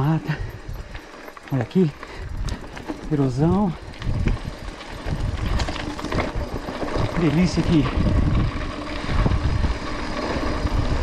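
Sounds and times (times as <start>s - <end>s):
bike rattling over bumps: 0.0s - 11.0s
bike tyres rumbling on dirt: 0.0s - 11.0s.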